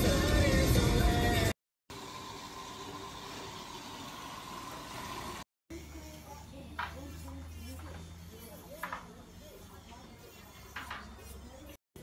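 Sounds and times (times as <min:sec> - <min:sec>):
song playing in car: 0:00.0 - 0:01.6.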